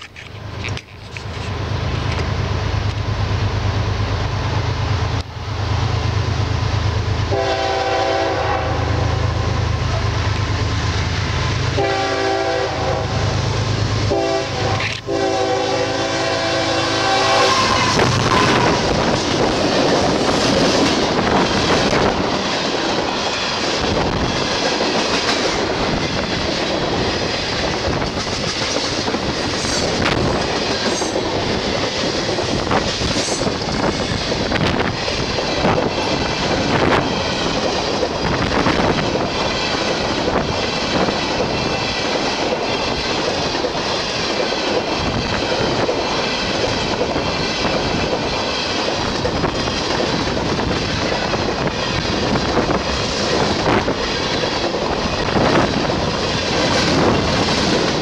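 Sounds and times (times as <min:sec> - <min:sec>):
locomotive engine rumble: 0:00.0 - 0:58.0
rumbling clatter of freight cars: 0:00.0 - 0:58.0
train horn blasts: 0:07.3 - 0:09.6, 0:11.7 - 0:19.0.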